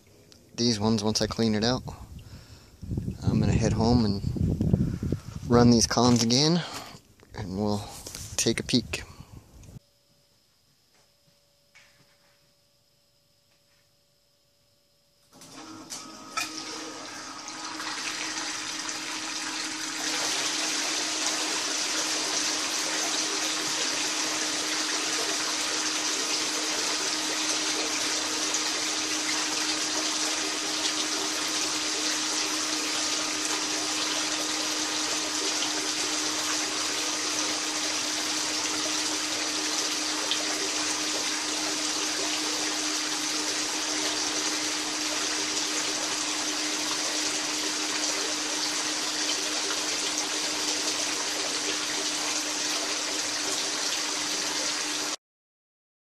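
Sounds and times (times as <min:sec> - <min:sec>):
small pump humming: 0:00.0 - 0:55.2
water pouring into plastic tub: 0:16.4 - 0:55.2.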